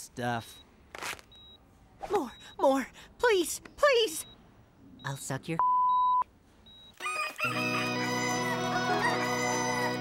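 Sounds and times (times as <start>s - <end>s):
censor bleep: 5.0s - 6.9s.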